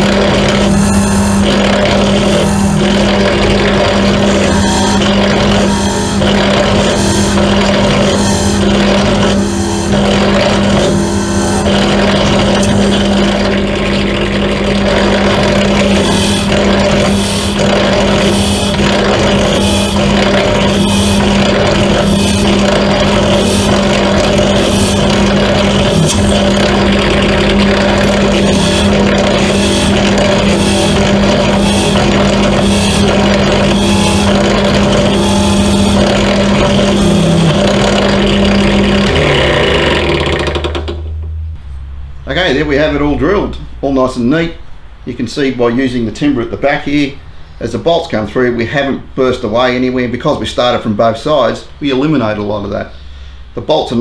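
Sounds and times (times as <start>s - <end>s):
drill bit cutting: 0.0s - 41.0s
pedestal drill motor hum: 0.0s - 41.7s.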